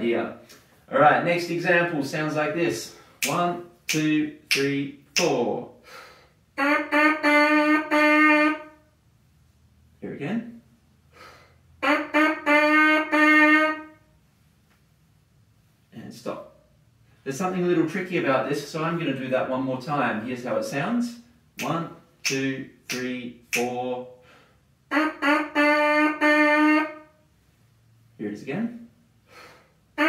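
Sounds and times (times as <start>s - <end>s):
brass mouthpiece buzzing: 6.5s - 8.8s, 11.8s - 14.1s, 24.8s - 27.2s.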